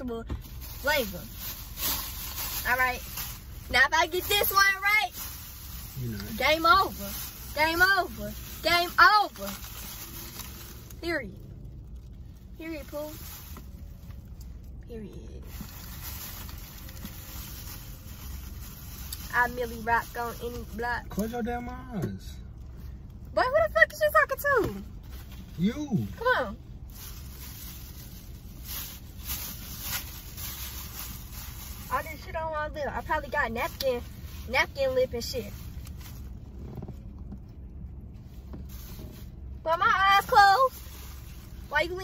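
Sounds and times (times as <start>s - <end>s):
low car cabin rumble: 0.0s - 42.0s.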